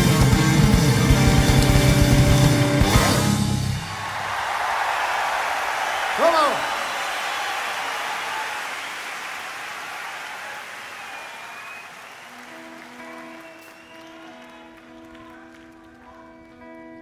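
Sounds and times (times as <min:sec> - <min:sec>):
audience applause: 0:03.6 - 0:17.0.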